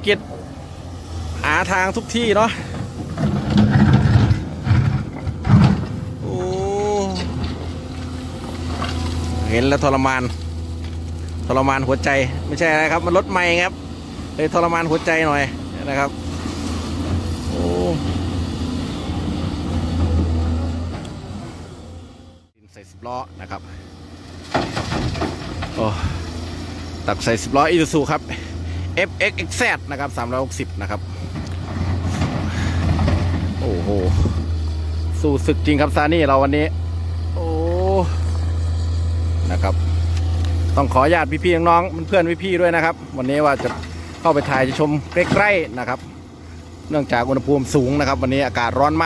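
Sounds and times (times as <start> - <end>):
excavator diesel engine under load: 0.0 - 49.0.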